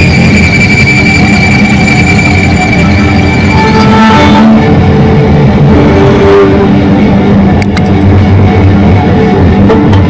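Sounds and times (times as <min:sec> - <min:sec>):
distorted violin drone: 0:00.0 - 0:10.0.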